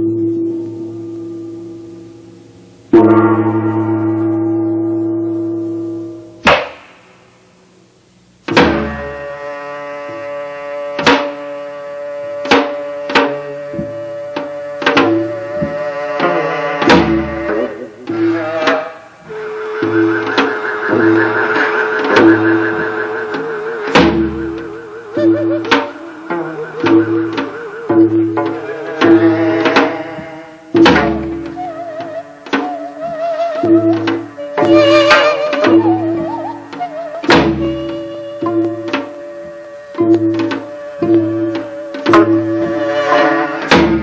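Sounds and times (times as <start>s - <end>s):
wavering melody line: 0.0s - 6.4s, 8.9s - 43.5s
higher pulsing line: 0.0s - 7.2s, 8.8s - 44.0s
repeating low notes: 0.0s - 44.0s
metal gong ringing: 2.9s - 6.4s
sharp percussive stroke: 2.9s - 7.2s, 10.9s - 11.6s, 12.4s - 32.8s.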